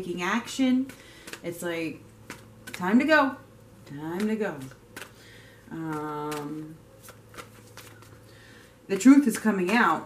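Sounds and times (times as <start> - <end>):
cards flicking and sliding on cloth: 0.8 - 1.5, 2.2 - 2.9, 4.1 - 5.2, 5.8 - 8.3.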